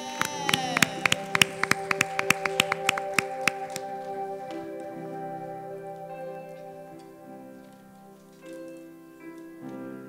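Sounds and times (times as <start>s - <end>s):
people clapping: 0.0s - 4.7s
sustained keyboard chord: 0.0s - 10.0s.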